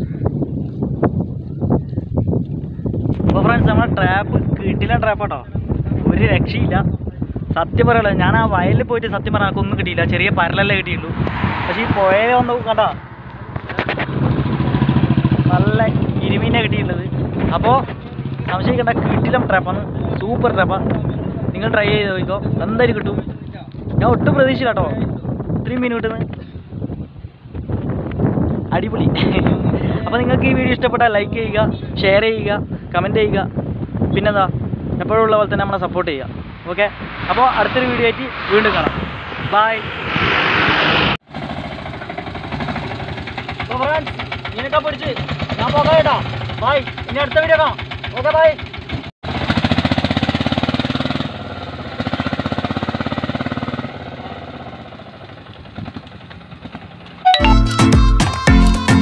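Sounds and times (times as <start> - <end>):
wind on microphone: 0.0 - 41.3
auto-rickshaw engine idling: 41.3 - 57.2.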